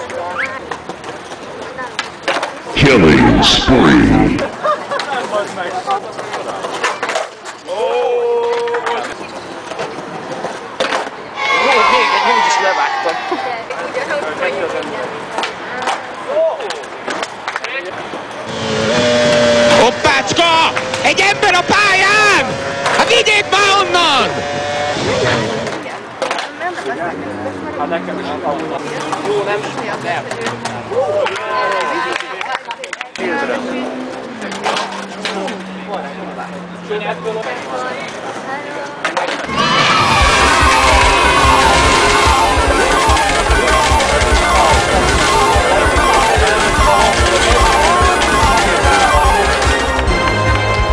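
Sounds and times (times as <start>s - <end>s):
skateboards clacking on stone: 0.0s - 2.7s, 5.0s - 11.3s, 14.6s - 18.4s, 25.7s - 26.8s, 28.6s - 33.2s, 38.0s - 39.6s, 40.5s - 50.4s
raised voices calling out: 2.8s - 4.6s, 11.4s - 13.7s, 39.4s - 50.1s
people talking: 2.8s - 6.1s, 19.7s - 24.4s, 40.8s - 49.8s
skateboard wheels rolling: 4.8s - 19.8s, 37.3s - 50.9s.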